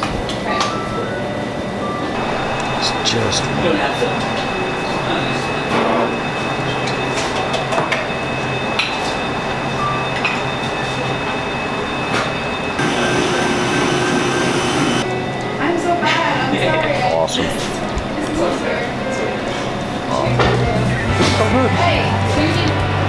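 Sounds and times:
murmur of voices: 0.0 - 7.6, 15.0 - 23.0
machine hum: 2.0 - 15.4
steady whir: 12.7 - 15.1.

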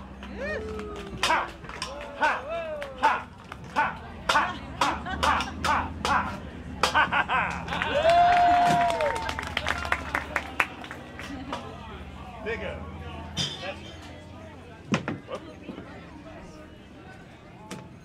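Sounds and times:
long held call: 0.1 - 11.2
sharp hand claps: 0.2 - 11.7.

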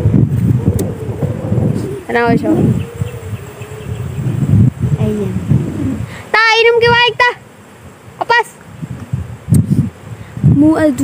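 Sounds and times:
wavering low buzz: 0.0 - 7.0
short vocal sound: 4.8 - 6.3.

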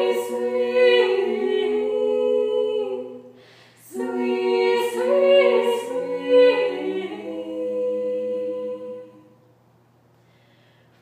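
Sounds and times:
women singing in harmony: 0.0 - 9.4.

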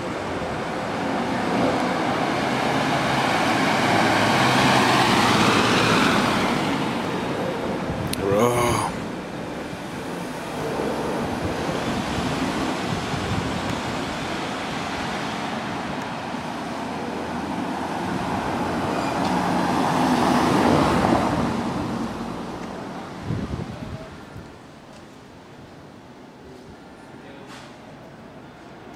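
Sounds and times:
car engine and tyre noise: 0.0 - 27.2.

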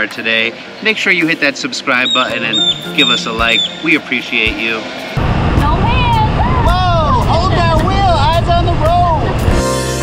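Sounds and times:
wind rumbling on microphone: 5.2 - 9.5
people whooping: 6.1 - 7.2.

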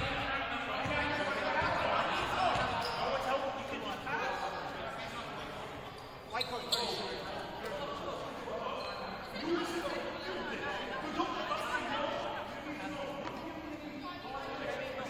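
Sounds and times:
people talking indistinctly: 0.0 - 15.0.

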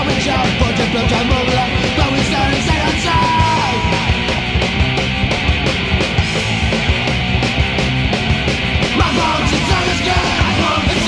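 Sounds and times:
punk rock band: 0.0 - 11.0.

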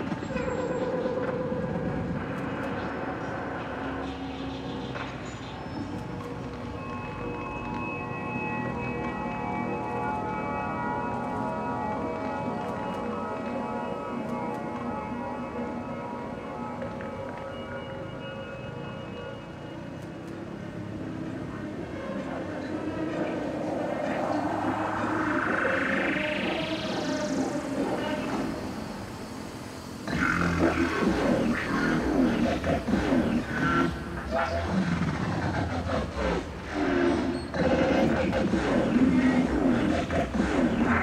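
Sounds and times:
sustained synthesizer tones: 0.0 - 41.0.

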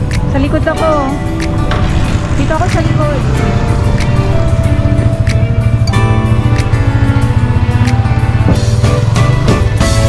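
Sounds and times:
song with steady beat: 3.7 - 10.0.

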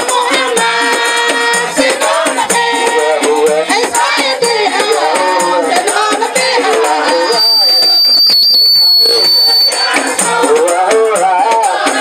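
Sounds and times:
person singing over loudspeaker: 0.0 - 7.8
high whistle-like tone: 7.2 - 10.0.

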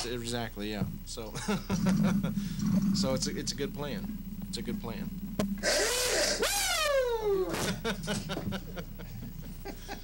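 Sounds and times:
loud hissing: 4.6 - 7.8
man whooping: 5.9 - 7.8.

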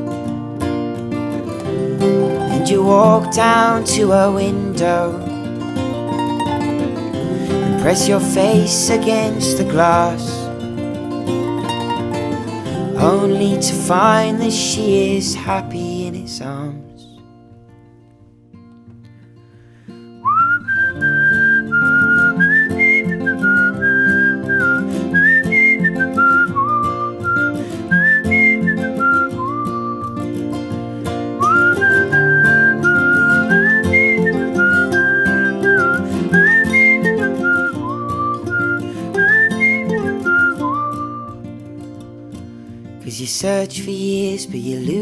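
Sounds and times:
strummed acoustic guitar: 0.0 - 45.0
whistled melody: 1.5 - 15.2, 19.9 - 41.9.

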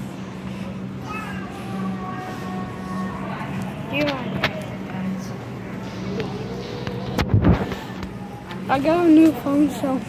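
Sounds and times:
store background hum: 0.0 - 10.0.

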